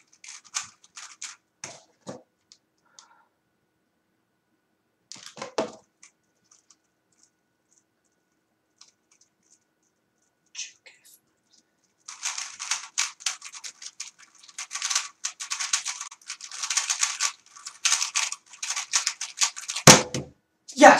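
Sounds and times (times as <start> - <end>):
puzzle cube clicking and rattling: 0.0 - 2.0, 12.0 - 20.1.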